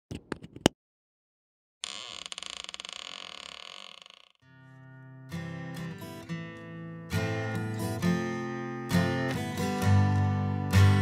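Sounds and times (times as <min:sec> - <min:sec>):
acoustic guitar music: 0:04.4 - 0:11.0.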